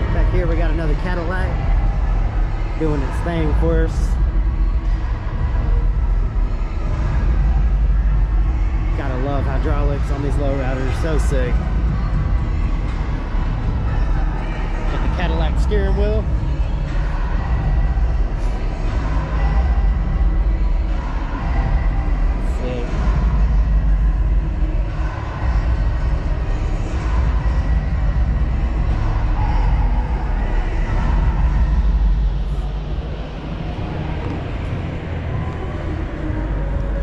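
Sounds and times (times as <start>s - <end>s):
faint crowd chatter: 0.0s - 37.0s
low rumble: 0.0s - 37.0s.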